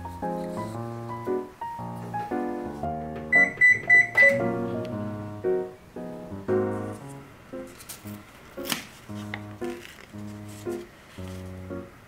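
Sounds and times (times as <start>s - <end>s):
guitar and piano background music: 0.0s - 12.0s
microwave oven beeping: 3.3s - 4.6s.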